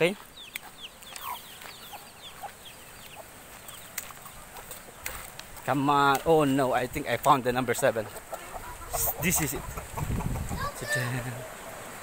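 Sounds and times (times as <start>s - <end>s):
chicks peeping: 0.0s - 6.2s, 8.0s - 11.0s
chickens clucking: 0.0s - 11.9s.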